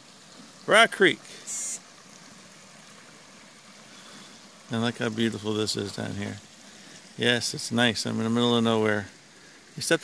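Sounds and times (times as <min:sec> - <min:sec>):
creek water flowing over rocks: 0:00.0 - 0:10.0.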